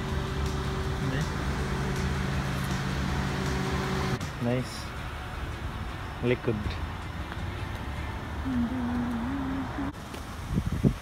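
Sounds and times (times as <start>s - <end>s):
car engine passing by: 0.0s - 5.3s.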